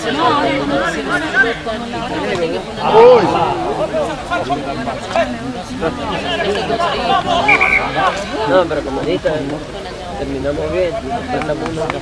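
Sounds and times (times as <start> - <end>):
voices shouting: 0.1 - 8.5
high whistle tone: 7.5 - 7.9.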